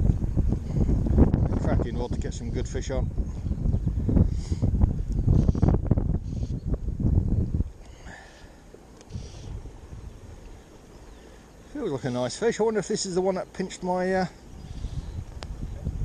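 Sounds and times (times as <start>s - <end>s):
wind buffeting microphone: 0.0s - 8.3s, 9.1s - 11.0s, 14.3s - 16.0s
steady hiss: 7.8s - 15.4s.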